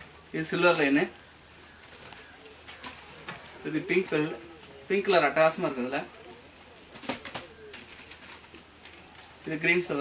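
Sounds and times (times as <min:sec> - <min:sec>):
bird cooing: 0:00.0 - 0:10.0.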